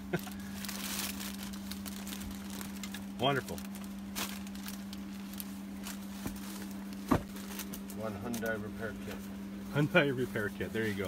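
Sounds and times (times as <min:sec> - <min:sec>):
person laughing: 0:00.0 - 0:00.6
low electrical hum: 0:00.0 - 0:11.0
fabric roll rustling: 0:00.5 - 0:11.0.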